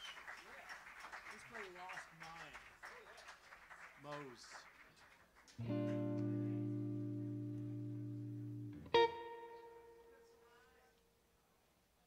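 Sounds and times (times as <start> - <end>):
electric guitar note ringing: 5.6 - 10.6.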